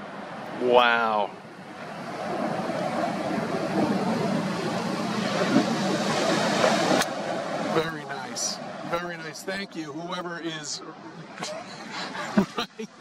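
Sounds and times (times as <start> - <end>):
ocean surf breaking: 0.0 - 12.6
wind buffeting microphone: 1.4 - 9.0.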